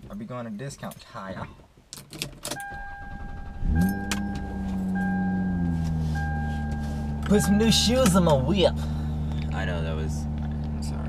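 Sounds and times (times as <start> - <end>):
car keys jingling in ignition: 2.0 - 8.5
car engine starting and idling: 2.4 - 11.0
electronic warning chime: 2.6 - 8.1.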